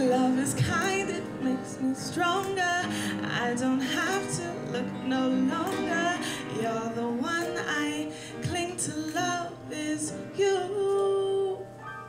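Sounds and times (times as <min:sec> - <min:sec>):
woman singing: 0:00.0 - 0:11.8
piano: 0:00.0 - 0:12.0.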